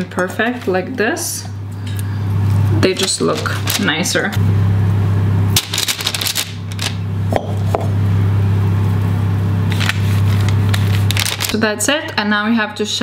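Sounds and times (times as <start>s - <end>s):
loud steady low hum: 0.0s - 13.0s
parchment paper rustling: 2.4s - 4.4s, 5.6s - 7.0s, 9.7s - 11.6s.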